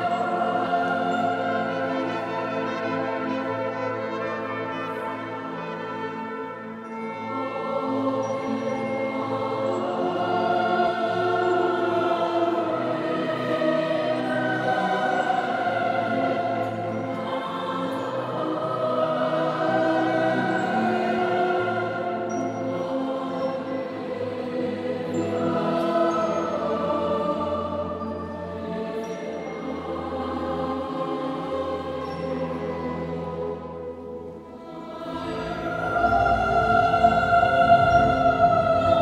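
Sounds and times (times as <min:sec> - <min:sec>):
symphony orchestra playing: 0:00.0 - 0:24.2, 0:24.8 - 0:39.0
choir singing: 0:00.0 - 0:39.0.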